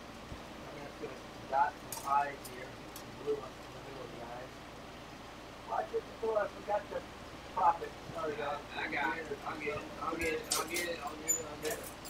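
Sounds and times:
quiet indistinct voices: 0:05.6 - 0:12.0
glass rods clinking: 0:10.2 - 0:12.0.

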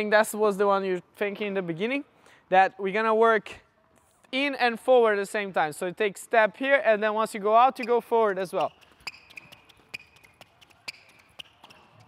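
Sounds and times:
shoe footsteps tapping on court: 0:07.7 - 0:12.0.

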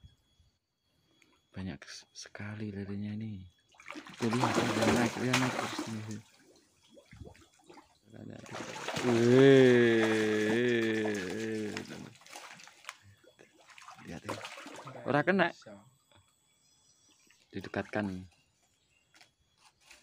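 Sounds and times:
fish splashing in water: 0:03.7 - 0:15.0
person's wavering vocal sound: 0:09.0 - 0:12.1.

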